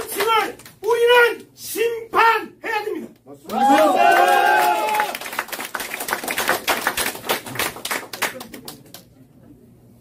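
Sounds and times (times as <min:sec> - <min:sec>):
audience applause: 0:03.5 - 0:08.9.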